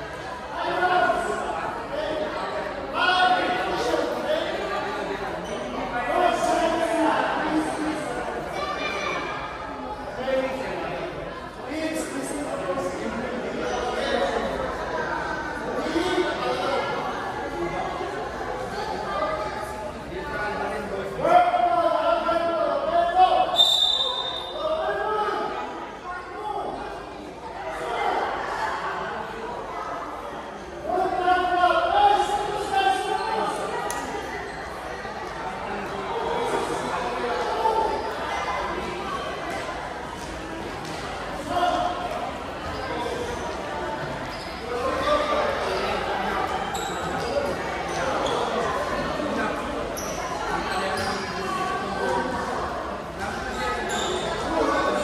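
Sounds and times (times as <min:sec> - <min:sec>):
children chattering and calling: 0:00.0 - 0:55.0.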